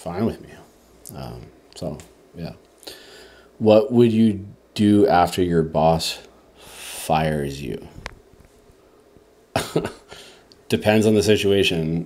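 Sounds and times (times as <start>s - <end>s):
man coughing: 9.5s - 10.2s.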